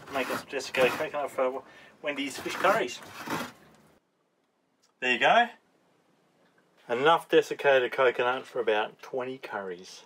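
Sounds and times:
coconut being grated: 0.0 - 1.4, 2.2 - 3.5.

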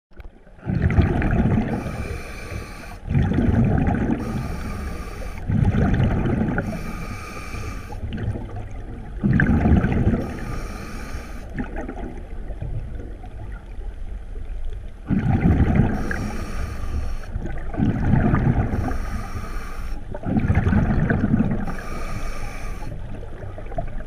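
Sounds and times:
exhaled bubbles underwater: 0.4 - 24.0
regulator hiss: 1.8 - 3.1, 4.2 - 5.5, 6.6 - 8.0, 10.2 - 11.5, 15.9 - 17.4, 18.8 - 20.0, 21.6 - 23.0.

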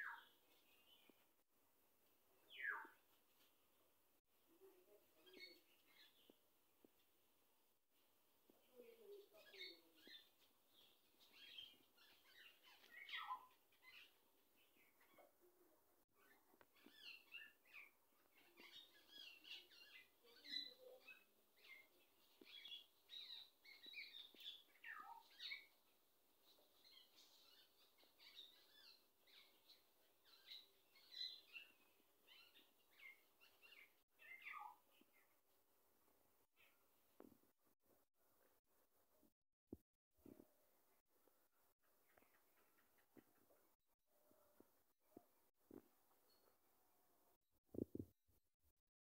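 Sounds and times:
small birds chirping faintly: 0.0 - 48.1.

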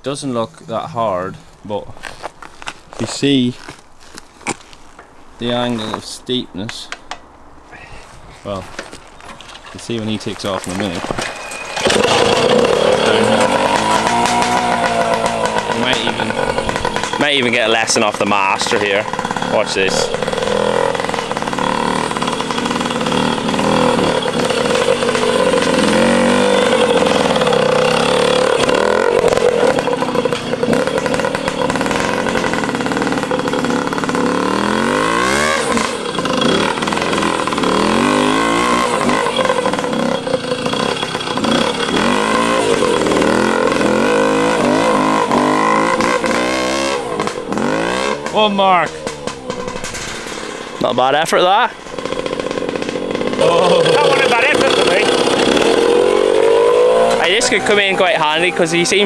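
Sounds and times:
motorcycle engine revving: 10.3 - 59.0.

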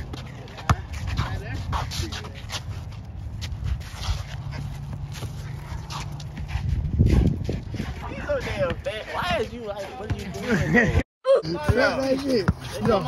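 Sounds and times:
wind rumble on microphone: 5.7 - 9.6
man laughing high-pitched: 10.3 - 11.4.

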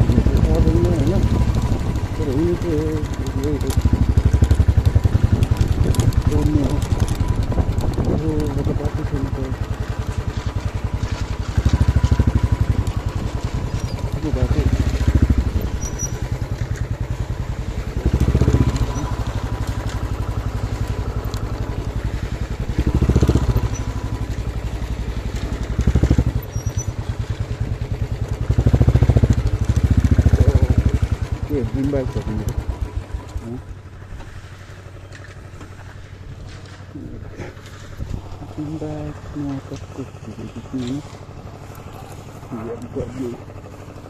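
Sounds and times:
motorcycle engine beating: 0.0 - 44.0.

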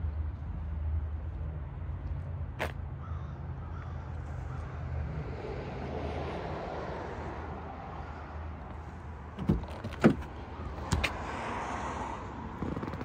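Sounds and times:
bird cawing: 3.0 - 4.9.

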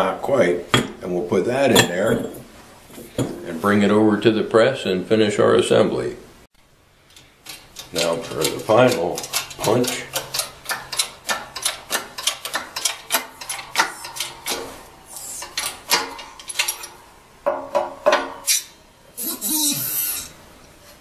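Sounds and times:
hydraulic jack clicking: 7.1 - 17.0
loud rasping noise: 12.5 - 16.0, 18.5 - 20.4.

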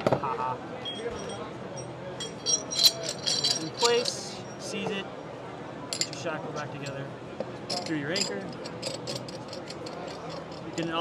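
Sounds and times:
metal-on-metal clinks: 0.9 - 4.8, 5.9 - 7.0, 7.7 - 11.0.

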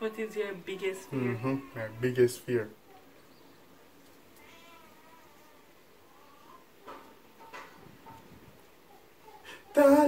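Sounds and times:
low room hiss: 0.0 - 10.0.

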